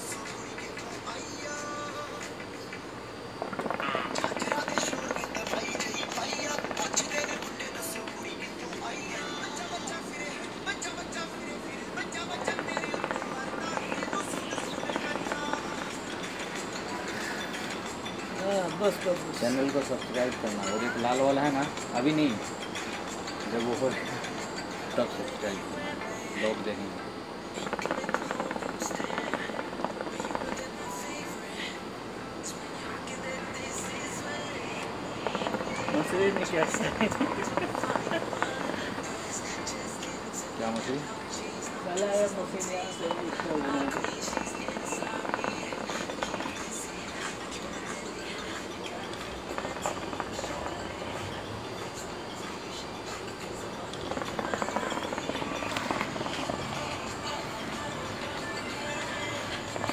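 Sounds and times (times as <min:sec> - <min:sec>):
hookah water bubbling: 0:03.0 - 0:07.7, 0:09.9 - 0:25.0, 0:27.2 - 0:30.9, 0:31.6 - 0:40.5, 0:42.3 - 0:59.9.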